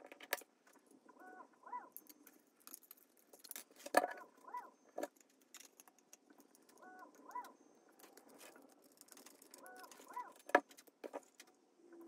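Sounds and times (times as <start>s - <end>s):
squeaky chirps: 4.1s - 5.0s, 6.4s - 8.6s, 9.2s - 10.8s.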